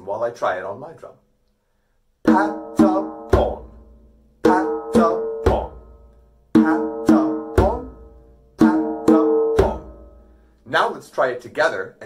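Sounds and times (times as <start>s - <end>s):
djembe hand drumming: 2.3s - 10.2s.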